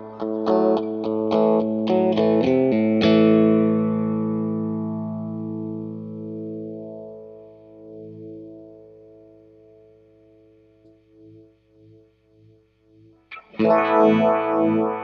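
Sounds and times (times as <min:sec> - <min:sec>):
electric guitar with phaser: 0:00.0 - 0:15.0.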